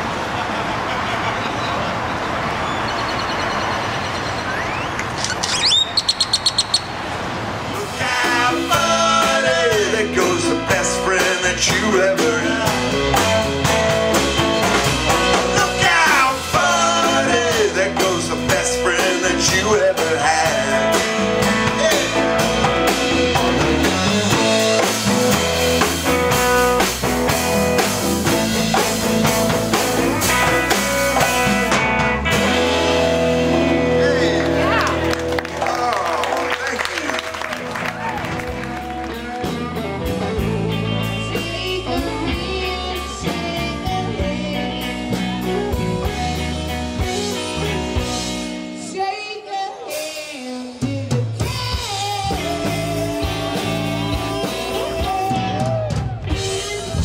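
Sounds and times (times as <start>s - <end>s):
outdoor noise: 0.0s - 10.5s
high chirps: 2.6s - 7.0s
electric bass: 4.4s - 49.0s, 50.8s - 57.0s
drum kit: 7.7s - 48.8s, 49.9s - 57.0s
electric guitar bending notes: 7.8s - 35.7s, 37.6s - 48.9s.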